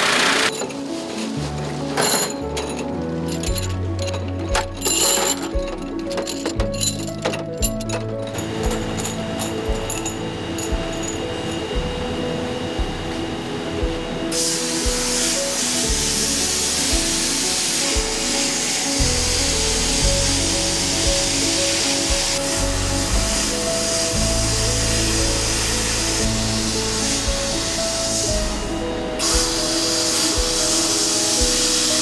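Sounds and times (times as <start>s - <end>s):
background music: 0.0s - 32.0s
air nozzle hissing: 14.3s - 32.0s.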